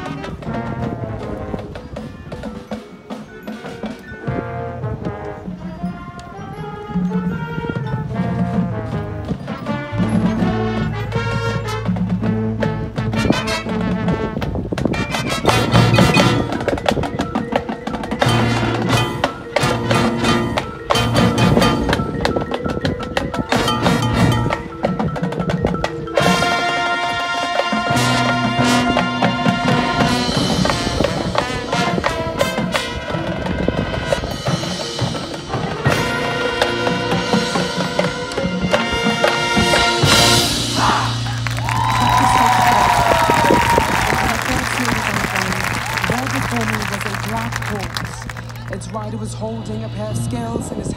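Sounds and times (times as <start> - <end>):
drums: 0.0 - 50.9
marching band playing: 0.0 - 50.9
mallet percussion: 1.8 - 14.1, 14.9 - 50.9.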